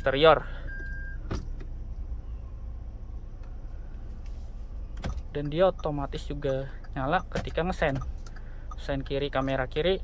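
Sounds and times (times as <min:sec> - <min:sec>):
low car cabin hum: 0:00.0 - 0:10.0.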